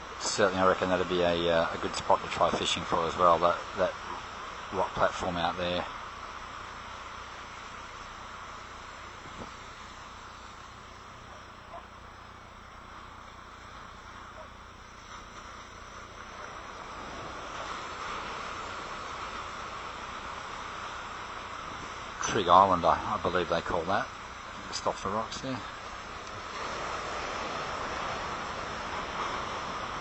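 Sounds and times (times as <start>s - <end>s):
surf washing on a beach: 0.0s - 30.0s.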